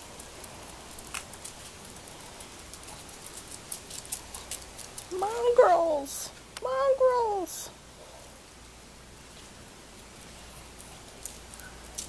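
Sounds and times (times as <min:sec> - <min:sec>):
dog claws ticking on concrete: 0:00.0 - 0:05.4, 0:10.6 - 0:12.0.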